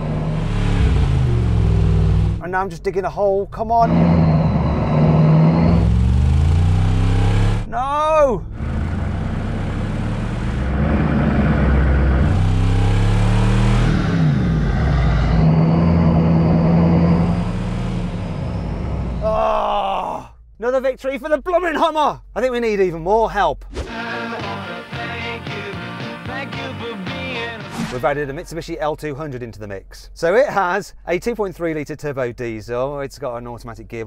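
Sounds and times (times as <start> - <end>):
off-road engines revving: 0.0 - 2.4, 3.7 - 7.7, 8.5 - 19.3.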